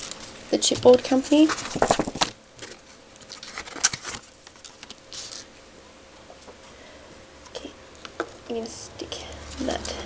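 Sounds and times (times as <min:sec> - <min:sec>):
paper taps and rustles: 0:00.0 - 0:05.0.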